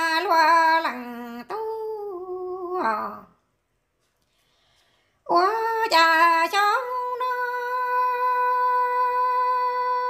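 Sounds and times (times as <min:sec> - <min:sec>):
woman singing unaccompanied: 0:00.0 - 0:03.4, 0:05.2 - 0:10.0.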